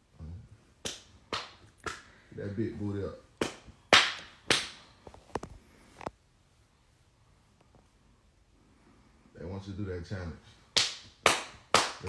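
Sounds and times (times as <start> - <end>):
hand slaps: 0.8 - 2.1, 3.3 - 4.9, 10.7 - 12.0.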